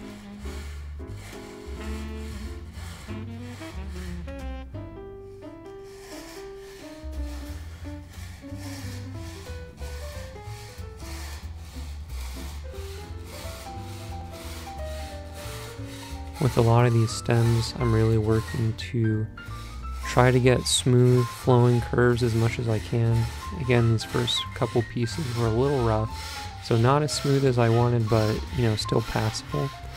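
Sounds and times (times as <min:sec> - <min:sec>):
background music: 0:00.0 - 0:29.9
fret saw cutting wood veneer: 0:00.0 - 0:29.9.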